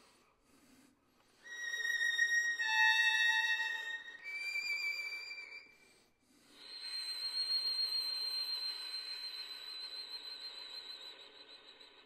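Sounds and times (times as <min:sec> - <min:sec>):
solo violin playing softly: 0:01.4 - 0:05.8.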